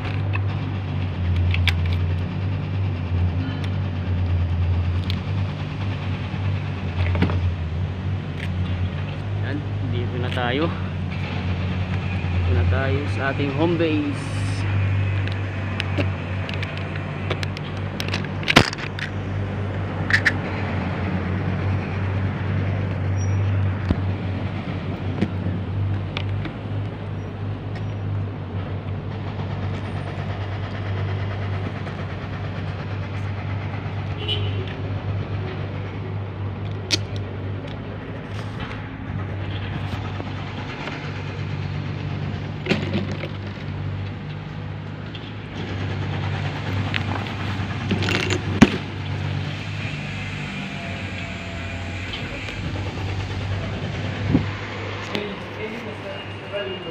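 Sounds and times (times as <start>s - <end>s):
sharp clicks and knocks: 0.0s - 2.5s, 14.8s - 20.7s, 22.7s - 27.1s, 36.6s - 49.2s
low engine hum: 0.0s - 56.3s.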